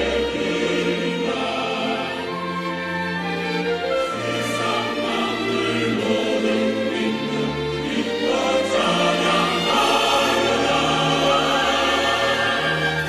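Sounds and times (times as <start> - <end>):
mixed choir singing a hymn: 0.0 - 2.5, 4.1 - 13.0
musical accompaniment: 0.0 - 13.0.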